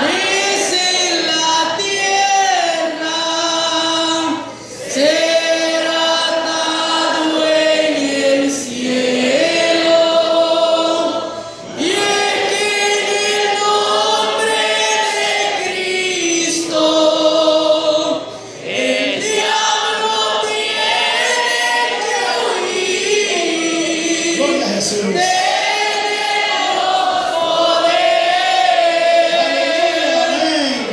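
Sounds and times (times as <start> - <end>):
youth choir singing a hymn: 0.0 - 30.9.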